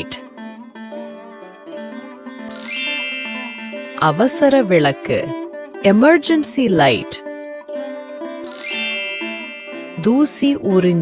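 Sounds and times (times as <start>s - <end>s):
light background music: 1.0s - 11.0s
bright chime sound effect: 2.5s - 4.6s, 8.5s - 10.5s.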